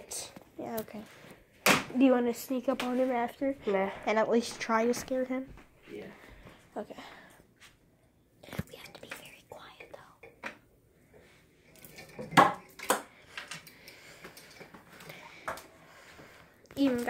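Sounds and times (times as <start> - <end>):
faint whispering: 8.4 - 10.4.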